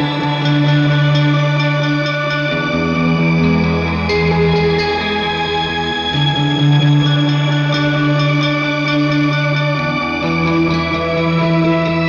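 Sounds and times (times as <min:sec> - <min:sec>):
electric guitar with shimmer reverb: 0:00.0 - 0:12.0.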